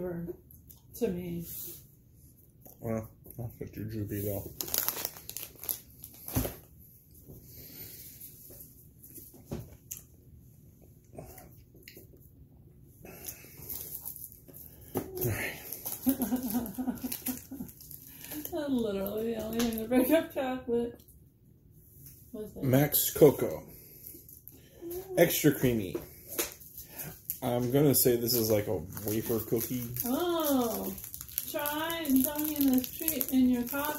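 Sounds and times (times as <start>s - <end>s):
plastic wrappers crinkling: 4.1s - 6.7s, 13.3s - 20.1s, 23.2s - 33.9s.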